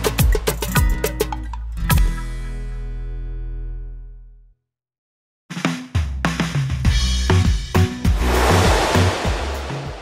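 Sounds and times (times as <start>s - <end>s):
cymbal crash: 8.1s - 10.0s.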